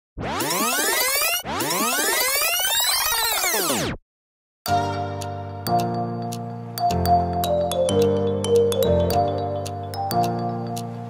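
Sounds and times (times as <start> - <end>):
electronic swooping pitch sweeps: 0.2 - 4.0.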